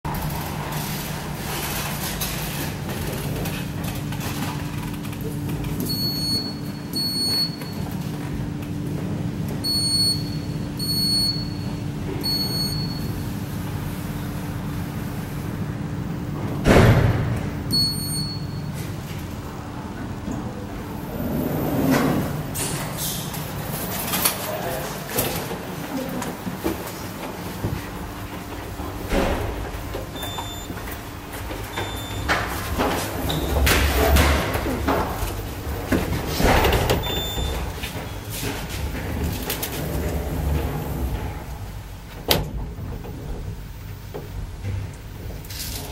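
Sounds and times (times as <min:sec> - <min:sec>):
steady low hum: 0:00.1 - 0:45.9
lift button beeps: 0:09.6 - 0:13.2, 0:17.7 - 0:18.8, 0:30.1 - 0:30.8, 0:31.7 - 0:32.3, 0:37.0 - 0:37.6.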